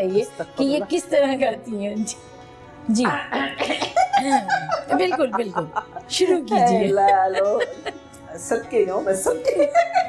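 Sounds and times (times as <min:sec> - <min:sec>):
woman laughing: 0:03.6 - 0:08.0, 0:09.3 - 0:10.0.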